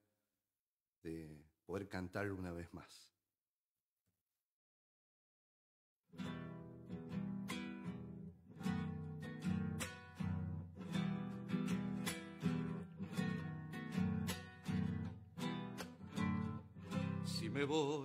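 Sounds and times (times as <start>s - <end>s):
acoustic guitar strumming: 6.2s - 18.0s.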